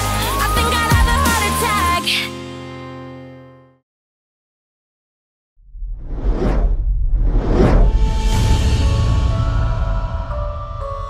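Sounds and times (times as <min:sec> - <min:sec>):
deep rumble: 0:05.6 - 0:11.0
whoosh sound effects: 0:05.8 - 0:09.2.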